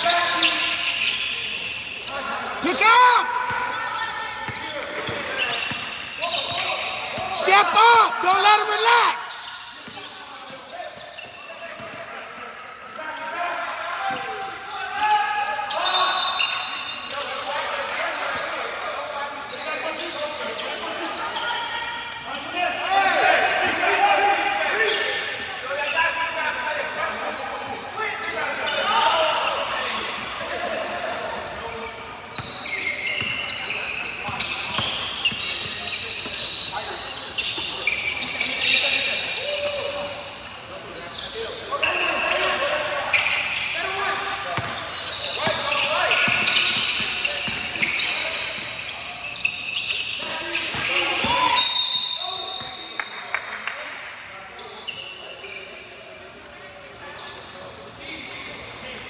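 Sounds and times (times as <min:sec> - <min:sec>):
voices echoing in gym: 0:00.0 - 0:59.0.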